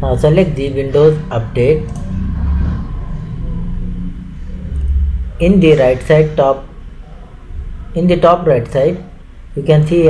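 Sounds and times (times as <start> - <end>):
low rumble: 0.0 - 8.2.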